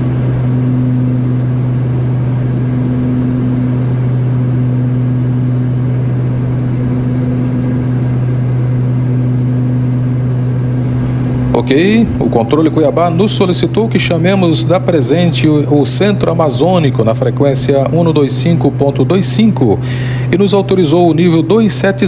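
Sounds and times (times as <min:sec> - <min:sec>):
turboprop engines droning: 0:00.0 - 0:22.0.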